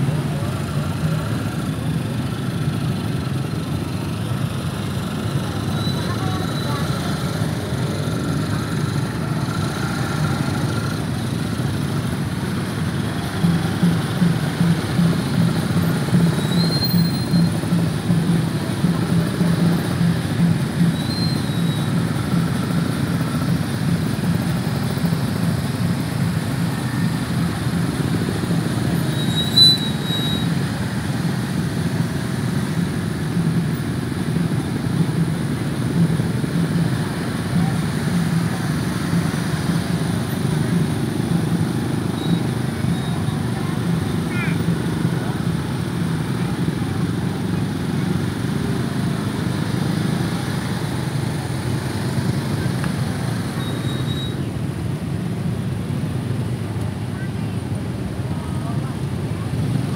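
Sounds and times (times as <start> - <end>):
motorcycle engines idling: 0.0 - 59.9.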